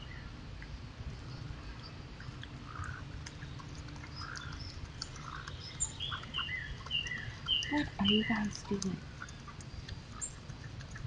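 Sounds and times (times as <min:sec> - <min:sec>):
steady low rumble: 0:00.0 - 0:11.0
small birds chirping: 0:01.2 - 0:11.0.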